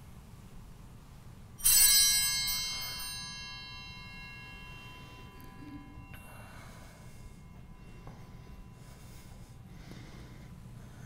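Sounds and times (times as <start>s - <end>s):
altar bell ringing: 1.6s - 10.8s.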